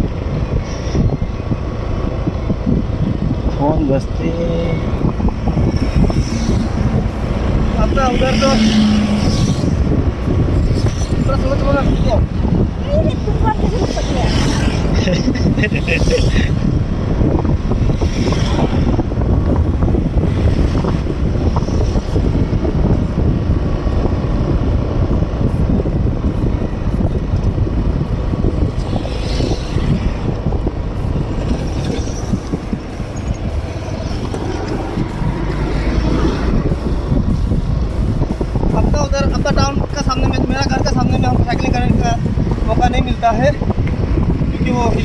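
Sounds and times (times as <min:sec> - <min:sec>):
road noise: 0:00.0 - 0:45.0
wind rumble on microphone: 0:00.0 - 0:45.0.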